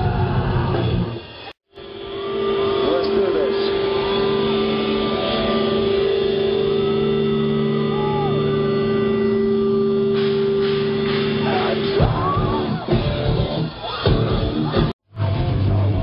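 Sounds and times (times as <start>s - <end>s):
held droning note: 1.7s - 13.9s
crowd shouting: 1.8s - 14.9s.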